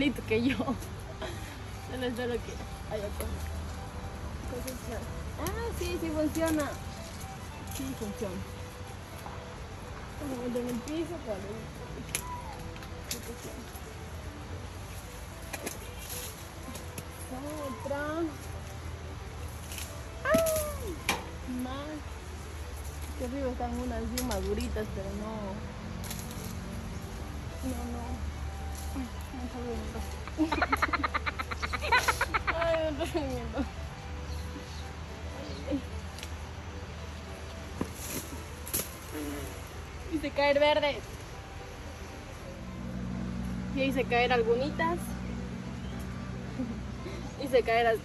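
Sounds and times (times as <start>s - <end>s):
leaves and branches rustling: 0.0s - 48.0s
branch snapping: 4.5s - 8.2s, 10.2s - 13.9s, 15.0s - 18.8s, 19.4s - 21.7s, 22.7s - 25.0s, 25.9s - 32.5s, 36.0s - 36.5s, 37.5s - 39.7s.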